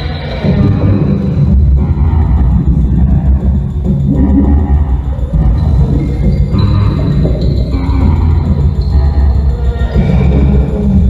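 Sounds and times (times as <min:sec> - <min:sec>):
electronic noise music: 0:00.0 - 0:11.0.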